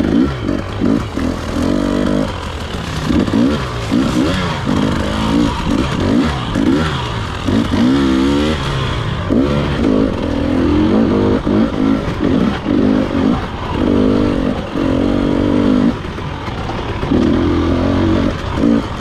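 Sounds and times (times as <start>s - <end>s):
dirt bike engine revving: 0.0s - 19.0s.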